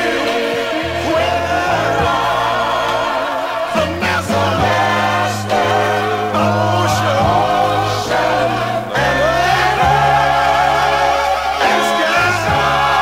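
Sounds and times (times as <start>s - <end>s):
gospel choir singing harmonies: 0.0s - 13.0s.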